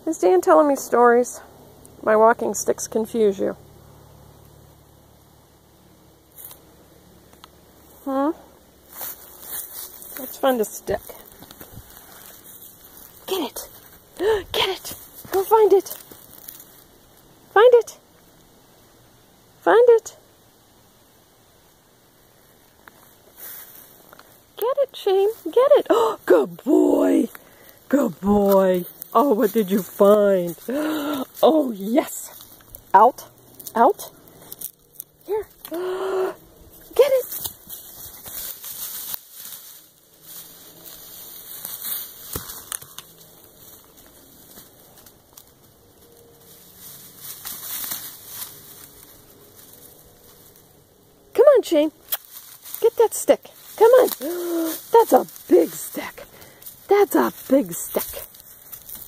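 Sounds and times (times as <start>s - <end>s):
dry leaves and twigs crackling: 0.0s - 19.3s, 20.4s - 59.0s
scratchy rustle: 8.8s - 17.0s, 36.7s - 45.2s, 46.0s - 50.7s.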